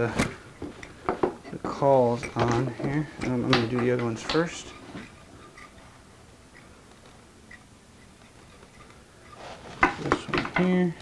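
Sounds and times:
faint small ticks of clamps: 0:06.5 - 0:09.4.

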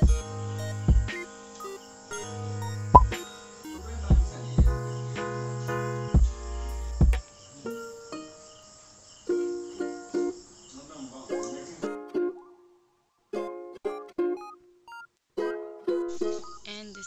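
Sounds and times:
plucked melody background music: 0:00.0 - 0:04.9, 0:11.4 - 0:12.6, 0:13.3 - 0:16.5.

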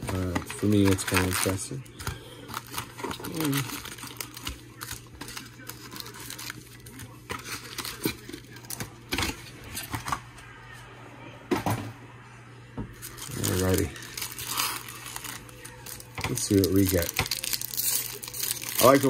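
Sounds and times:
foil card packs rustling: 0:00.0 - 0:10.2, 0:13.0 - 0:19.0.

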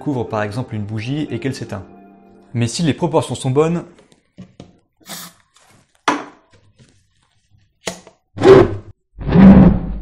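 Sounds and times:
aerosol spray hissing: 0:05.0 - 0:05.4.

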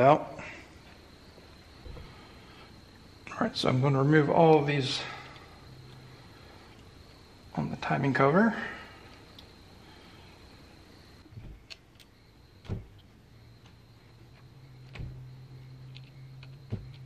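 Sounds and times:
low steady hum: 0:00.0 - 0:17.0
faint metal clicks: 0:15.8 - 0:17.0.

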